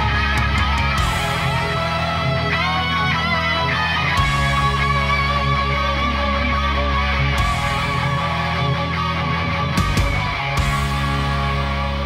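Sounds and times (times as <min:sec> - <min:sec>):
bass guitar: 0:00.0 - 0:12.0
distorted electric guitar lead: 0:00.0 - 0:12.0
drums: 0:00.0 - 0:12.0.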